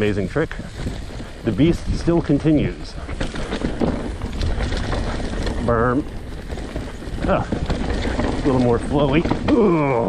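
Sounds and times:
bike rattling and clicking: 0.0 - 10.0
tyres rolling on dirt: 0.0 - 10.0
wind rumble on microphone: 0.0 - 10.0.

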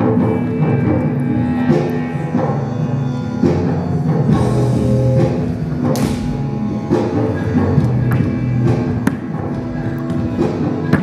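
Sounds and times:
sustained pitched instruments: 0.0 - 11.0.

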